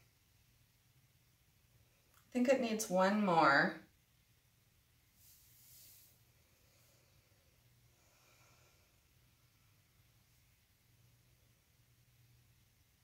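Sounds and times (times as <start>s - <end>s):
faint brief hiss: 5.1s - 6.3s.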